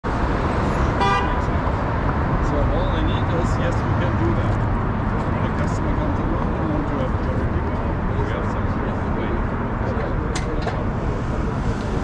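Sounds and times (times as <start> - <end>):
street traffic rumble: 0.0 - 12.0
car horn toot: 0.8 - 1.5.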